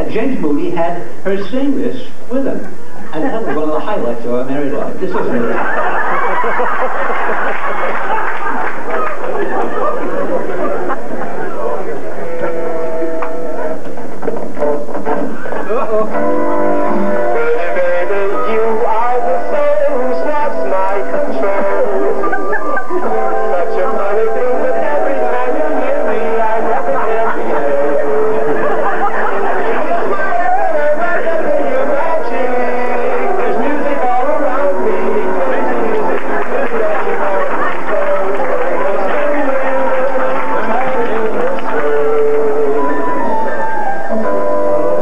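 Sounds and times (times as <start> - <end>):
people talking: 0.0 - 13.8, 15.1 - 16.2, 17.0 - 44.3
recorded music from small player: 5.4 - 45.0
jazz song with person singing: 14.6 - 45.0.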